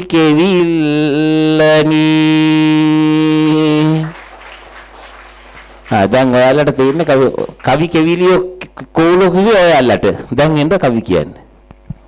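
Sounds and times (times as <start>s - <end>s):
man chanting into a microphone: 0.0s - 4.2s, 5.9s - 11.4s.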